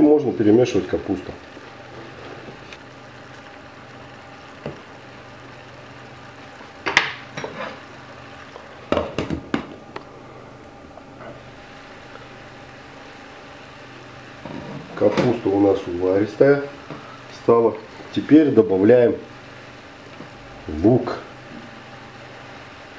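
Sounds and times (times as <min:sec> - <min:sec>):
steady low hum: 0:00.0 - 0:22.9.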